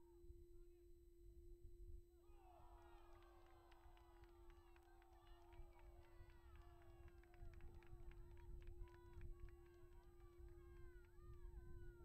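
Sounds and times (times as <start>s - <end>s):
distant shouting players: 2.2s - 11.3s
wind rumble on microphone: 5.5s - 12.0s.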